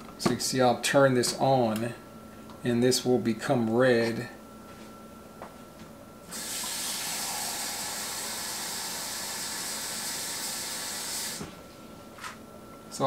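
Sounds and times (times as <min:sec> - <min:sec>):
faucet running water into cup: 0:06.3 - 0:11.4.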